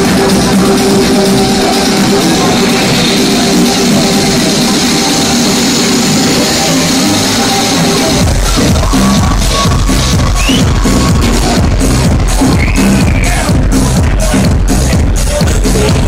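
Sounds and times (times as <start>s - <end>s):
techno music over sound system: 0.0s - 16.0s.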